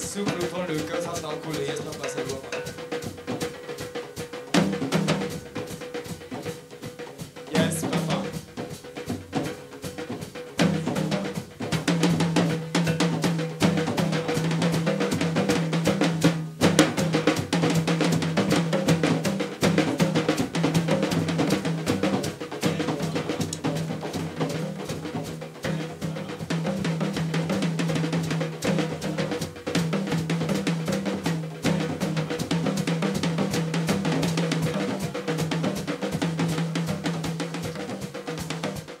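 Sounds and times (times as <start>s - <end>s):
drum kit playing fast: 0.0s - 39.0s.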